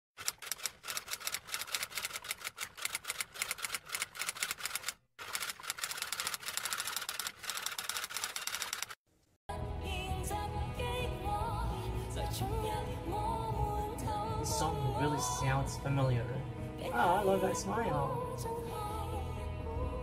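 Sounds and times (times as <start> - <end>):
typewriter keystroke clacks: 0.2 - 9.0
music with singing: 9.5 - 20.0.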